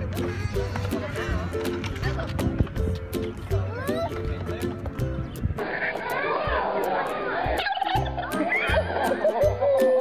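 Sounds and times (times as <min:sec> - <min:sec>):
background music with steady beat: 0:00.0 - 0:10.0
wavering voices: 0:05.6 - 0:10.0.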